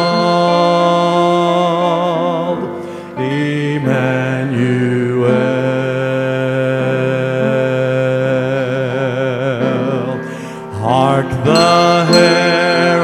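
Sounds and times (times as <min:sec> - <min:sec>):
person singing with vibrato: 0:00.0 - 0:13.0
piano chords: 0:00.0 - 0:13.0.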